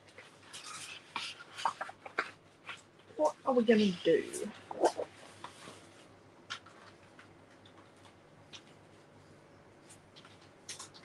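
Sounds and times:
paper rustling and tapping: 0.0 - 3.1, 9.9 - 11.0.

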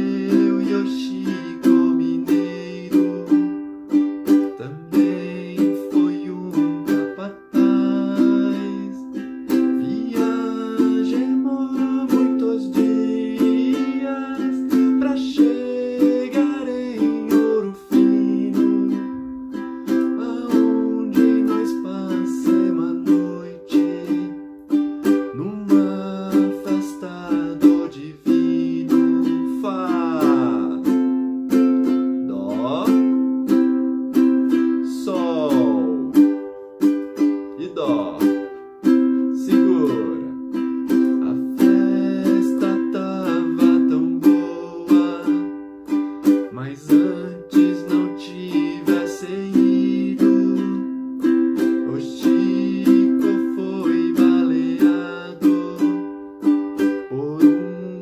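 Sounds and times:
ukulele strumming: 0.0 - 58.0.

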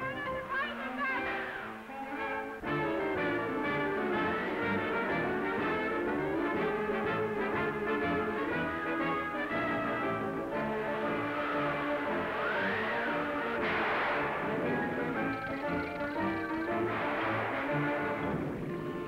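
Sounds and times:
orchestral cartoon music with brass: 0.0 - 19.0.

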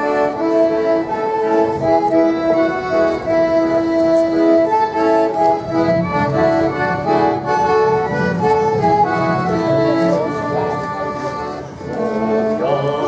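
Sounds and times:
folk dance music with accordion: 0.0 - 13.0
sliding tone: 4.6 - 11.5.

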